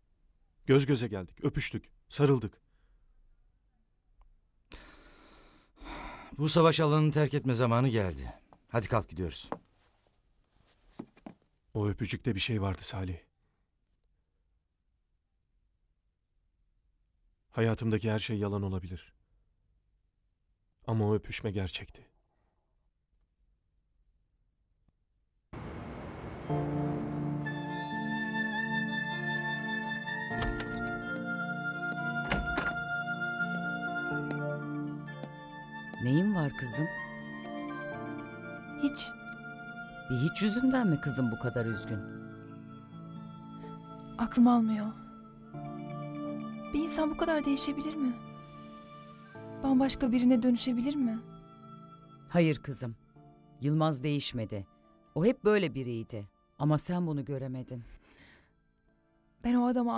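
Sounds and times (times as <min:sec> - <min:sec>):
soft background music: 0:26.3 - 0:58.0, 0:58.6 - 0:59.9.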